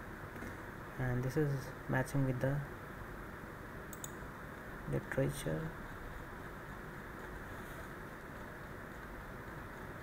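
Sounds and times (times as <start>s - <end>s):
computer mouse clicking: 3.9s - 4.2s.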